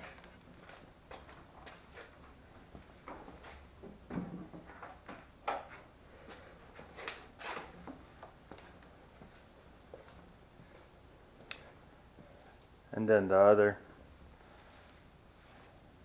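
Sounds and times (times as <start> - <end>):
footsteps on concrete: 6.3 - 10.9.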